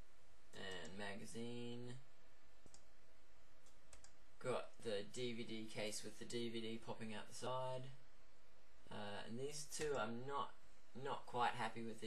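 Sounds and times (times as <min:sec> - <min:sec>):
steady low hiss: 0:00.0 - 0:12.0
computer mouse clicks: 0:02.6 - 0:02.9, 0:03.6 - 0:04.2.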